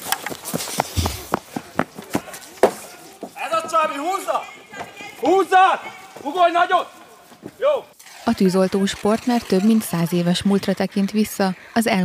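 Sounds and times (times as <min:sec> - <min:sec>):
footsteps running on grass: 0:00.0 - 0:02.6
dull low thump: 0:00.9 - 0:01.4.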